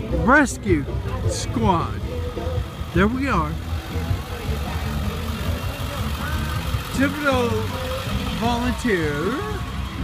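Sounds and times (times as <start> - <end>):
truck engine rumbling: 0.0 - 10.0.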